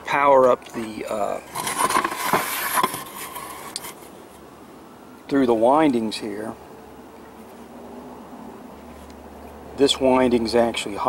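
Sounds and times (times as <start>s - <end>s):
paper rustling: 0.7s - 4.1s.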